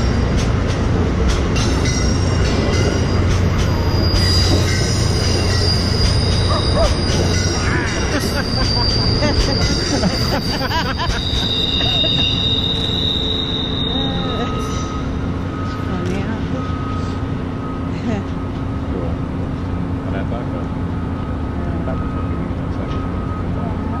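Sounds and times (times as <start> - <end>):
train low hum: 0.0 - 24.0
train wheels squealing: 1.6 - 17.9
thin high tone: 4.0 - 17.2.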